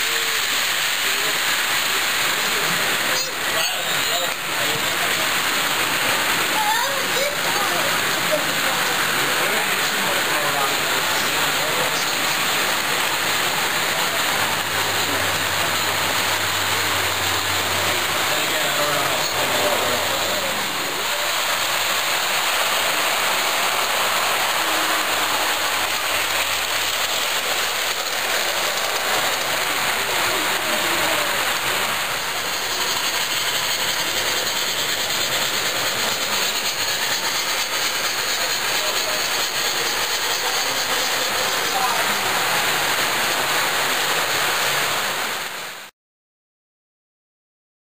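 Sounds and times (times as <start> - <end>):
crowd chatter: 0.0 - 44.2
model trains running on track: 0.0 - 45.9.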